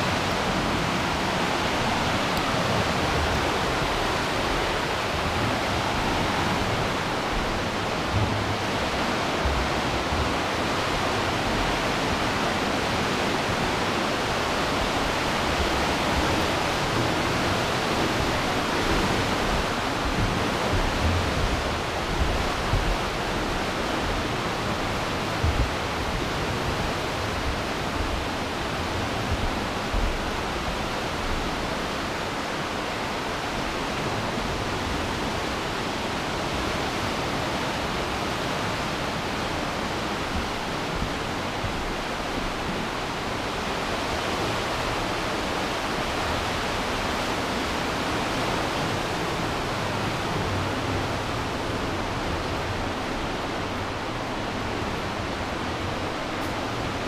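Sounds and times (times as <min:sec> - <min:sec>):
whitewater rushing: 0:00.0 - 0:57.0.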